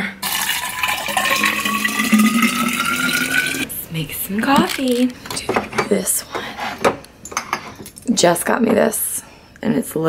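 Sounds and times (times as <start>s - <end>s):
water pouring into bottle: 0.2s - 3.7s.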